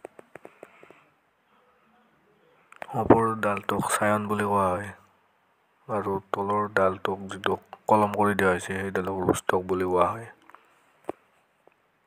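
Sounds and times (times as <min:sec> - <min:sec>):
person speaking: 0:01.6 - 0:05.2, 0:05.8 - 0:10.7.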